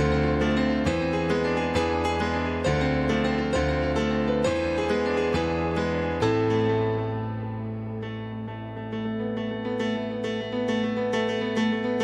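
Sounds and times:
electronic keyboard piano chords: 0:00.0 - 0:12.0.

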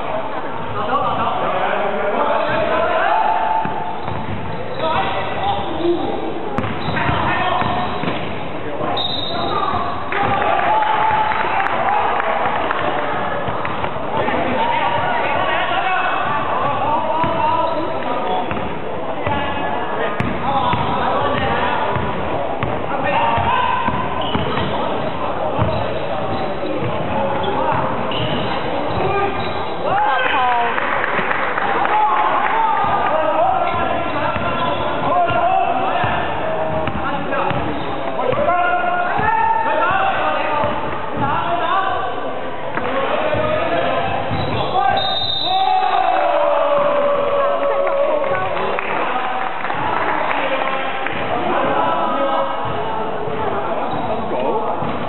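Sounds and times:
loud shout: 0:02.3 - 0:03.9, 0:09.2 - 0:13.2, 0:29.0 - 0:36.5, 0:43.1 - 0:52.4
basketball bouncing on wooden court: 0:03.6 - 0:04.6, 0:06.6 - 0:08.3, 0:17.2 - 0:17.5, 0:18.4 - 0:19.4, 0:20.2 - 0:29.5, 0:36.0 - 0:38.5
basketball bouncing on hardwood: 0:06.6 - 0:08.2
players shouting: 0:08.8 - 0:18.5, 0:42.8 - 0:52.6.

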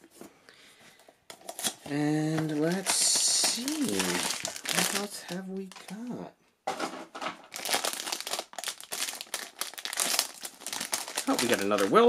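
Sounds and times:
foil wrapper crinkling and tearing: 0:01.4 - 0:06.1, 0:07.5 - 0:12.0.

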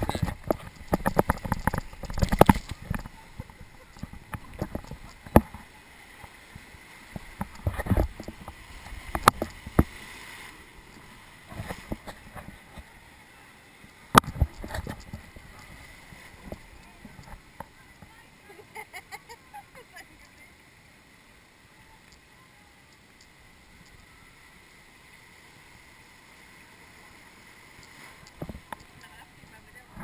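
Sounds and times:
sharp knocks and splashes: 0:00.0 - 0:12.9, 0:14.1 - 0:18.1
whitewater rushing: 0:00.0 - 0:18.8.

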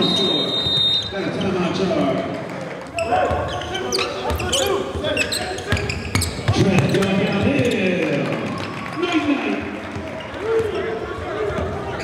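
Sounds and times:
sneaker squeaks: 0:00.0 - 0:01.8, 0:02.9 - 0:08.0
echoing voices: 0:00.0 - 0:12.0.

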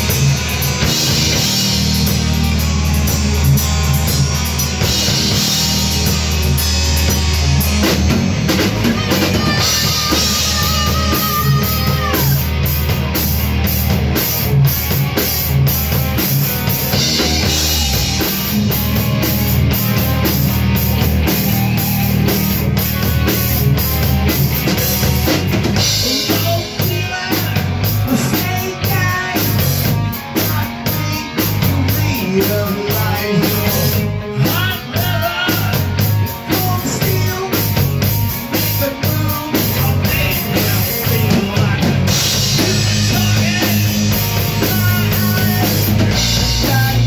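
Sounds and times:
rock band playing: 0:00.0 - 0:47.0.

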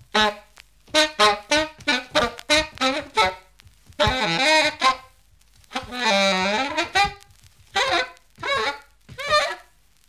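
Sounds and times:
saxophone notes bending in pitch: 0:00.1 - 0:05.1, 0:05.7 - 0:09.7.

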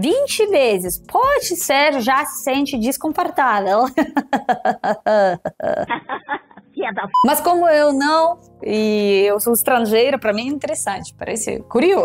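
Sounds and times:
woman laughing: 0:03.8 - 0:07.2.

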